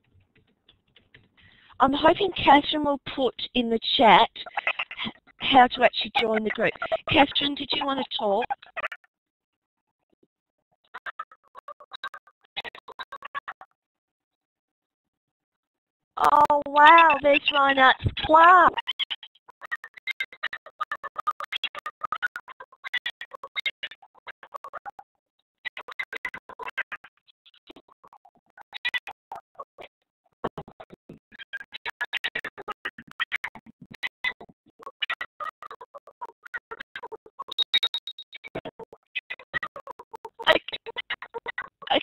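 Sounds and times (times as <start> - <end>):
garbled stuttering microphone audio: 0.1 - 9.0, 16.2 - 19.2, 25.7 - 42.0.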